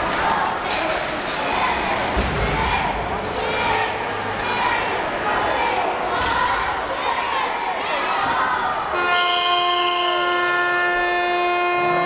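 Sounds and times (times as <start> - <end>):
crowd murmur: 0.0 - 12.0
arena horn blast: 8.9 - 12.0.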